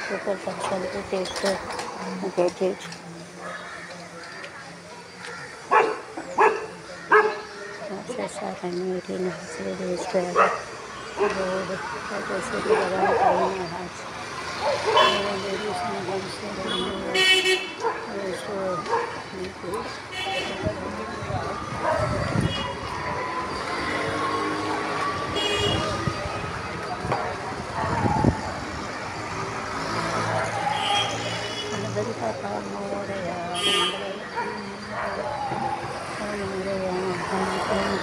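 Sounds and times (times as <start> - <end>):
passing vehicles: 0.0 - 38.0
voices: 0.0 - 38.0
vehicle horn toots: 25.4 - 26.0.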